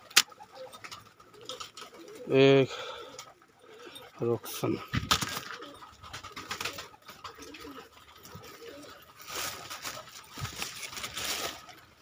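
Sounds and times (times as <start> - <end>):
pigeons cooing: 0.0 - 12.0
rapid rustling clatter: 3.2 - 12.0.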